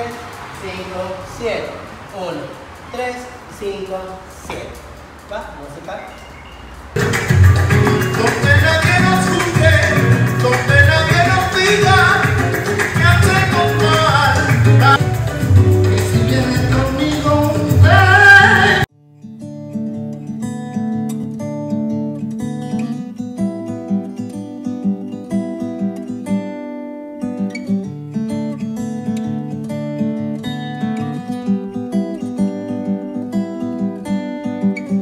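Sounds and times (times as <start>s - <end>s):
acoustic guitar picking: 6.1s - 35.0s.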